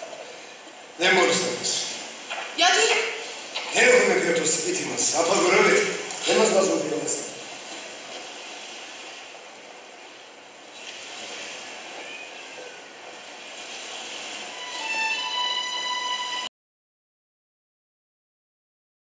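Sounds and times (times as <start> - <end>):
music with long held notes: 14.5 - 16.5.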